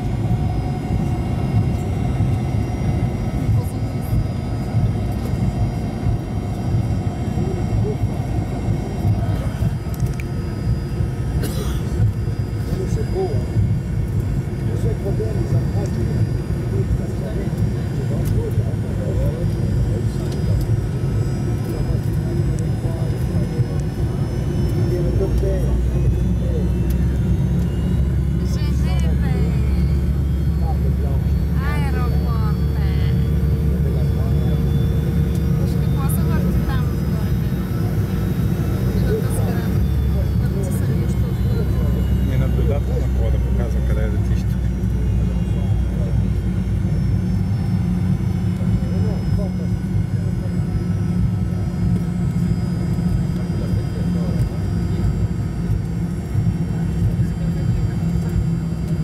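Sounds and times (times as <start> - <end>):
jet engine cabin rumble: 0.0 - 59.0
passengers talking: 0.0 - 59.0.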